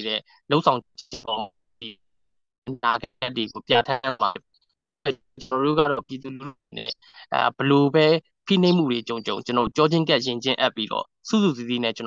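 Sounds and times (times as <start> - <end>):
person talking: 0.0 - 2.0, 2.7 - 4.4, 5.0 - 12.0.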